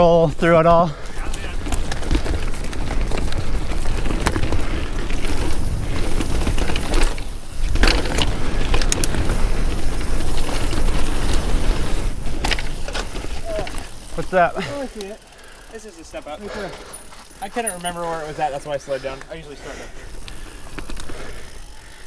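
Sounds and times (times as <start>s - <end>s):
bike tyres running over dirt: 0.0s - 22.0s
chain and frame clattering: 15.8s - 19.0s.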